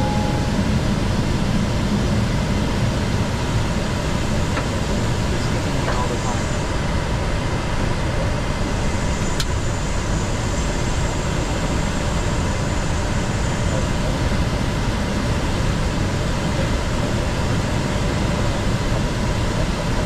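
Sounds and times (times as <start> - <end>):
faint high whine: 0.0 - 4.5.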